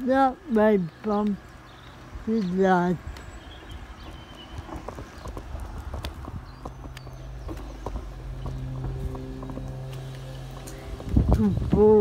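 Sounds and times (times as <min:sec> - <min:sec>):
footsteps on tarmac: 0:00.0 - 0:12.0
low steady hum: 0:06.4 - 0:12.0.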